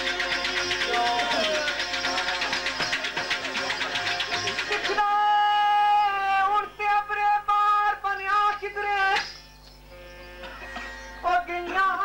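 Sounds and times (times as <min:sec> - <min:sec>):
fast rhythmic playing: 0:00.0 - 0:06.6
person singing with music: 0:11.1 - 0:12.0.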